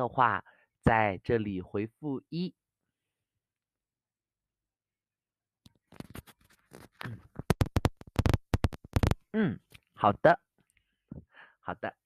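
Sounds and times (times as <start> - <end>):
man's voice: 0.0 - 2.5
earphone microphone crackles: 5.8 - 9.9.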